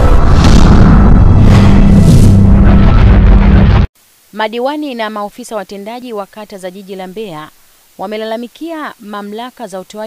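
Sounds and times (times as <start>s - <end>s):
bass-heavy intro theme music: 0.0s - 3.9s.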